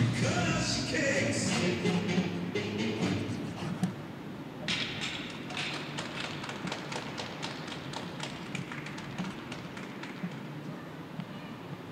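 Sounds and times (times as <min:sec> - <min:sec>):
scattered applause: 0:05.4 - 0:11.0.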